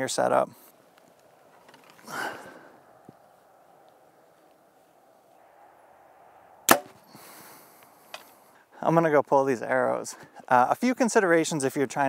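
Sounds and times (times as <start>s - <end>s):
soft rush of noise: 0.0s - 10.7s
bow string snapping: 6.7s - 7.0s.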